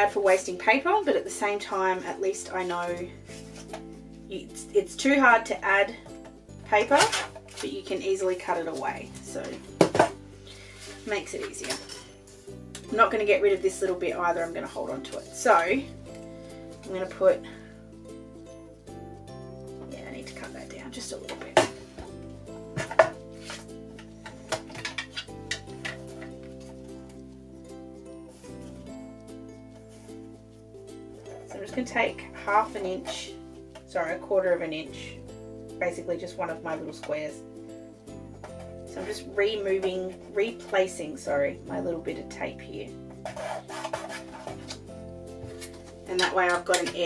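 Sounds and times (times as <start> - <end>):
background music: 0.0 - 47.0
paper rustling: 22.8 - 27.4, 43.2 - 46.1.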